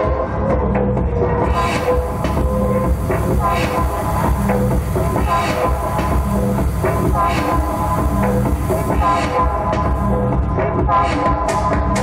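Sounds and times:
techno music through sound system: 0.0 - 12.0.

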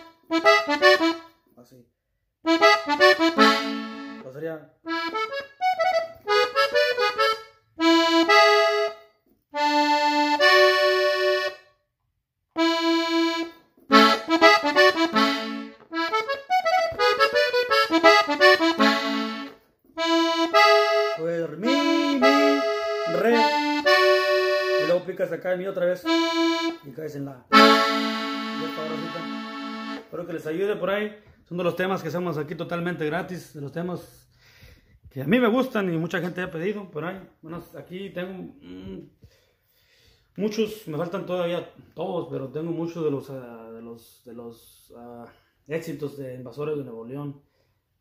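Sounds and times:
button accordion melody: 0.0 - 1.6, 2.4 - 11.8, 12.5 - 33.8.

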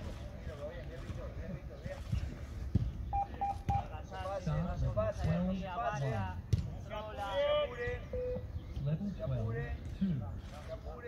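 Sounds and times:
short electronic beeps: 3.1 - 3.9, 8.1 - 8.5.

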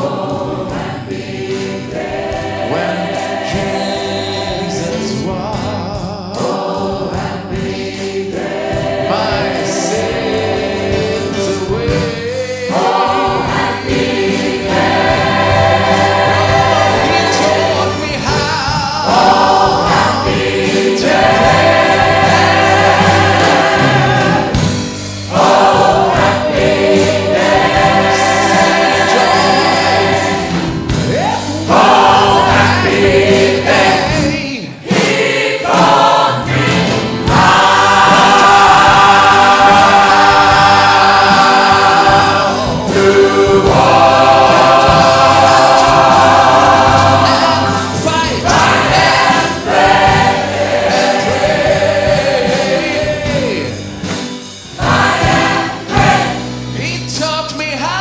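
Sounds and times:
drums: 0.0 - 58.0
gospel choir singing: 0.0 - 58.0
keyboards: 0.0 - 58.0.

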